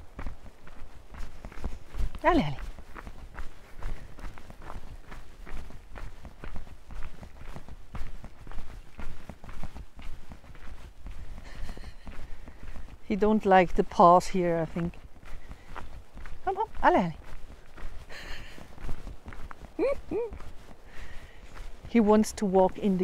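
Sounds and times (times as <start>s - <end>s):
footsteps on gravel: 0.0s - 23.0s.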